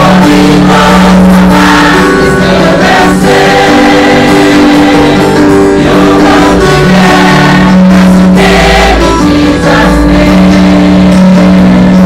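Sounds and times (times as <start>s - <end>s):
gospel choir and soloist singing: 0.0s - 12.0s
low instrumental chords: 0.0s - 12.0s.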